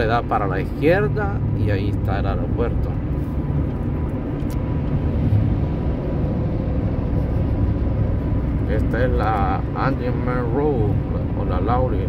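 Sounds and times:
engine drone in vehicle cabin: 0.0 - 12.0
road noise: 0.0 - 12.0.

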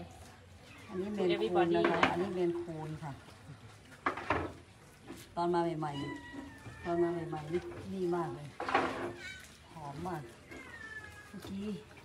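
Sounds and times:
cats meowing: 10.2 - 12.0.

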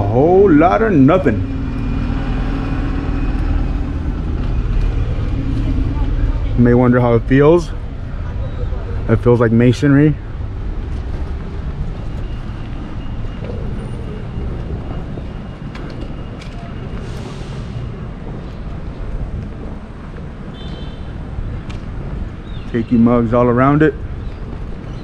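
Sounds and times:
city traffic rumble: 0.0 - 25.0.

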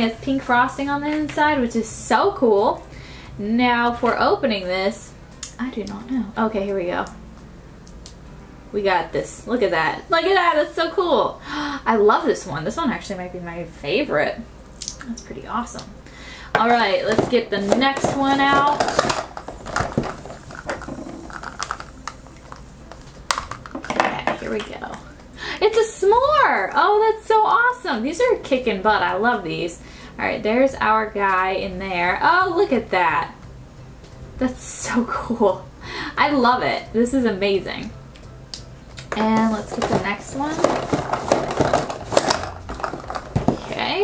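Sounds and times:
plastic capsules clicking: 17.2 - 22.6, 23.3 - 24.7, 39.0 - 43.7
plastic capsule clicking open: 18.8 - 23.9.

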